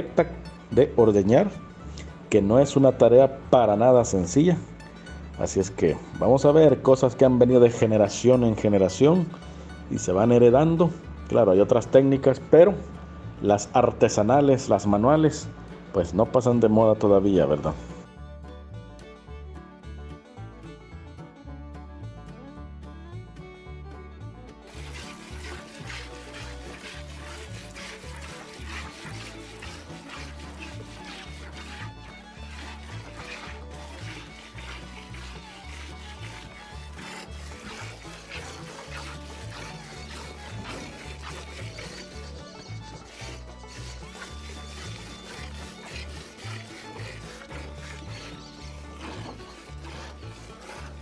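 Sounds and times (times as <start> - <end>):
background music: 0.0 - 51.0
milk squirting into container: 24.7 - 51.0.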